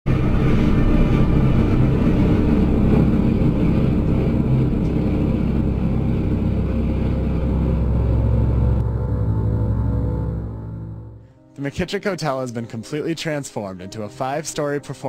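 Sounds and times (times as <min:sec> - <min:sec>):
loud churning low rumble: 0:00.1 - 0:11.5.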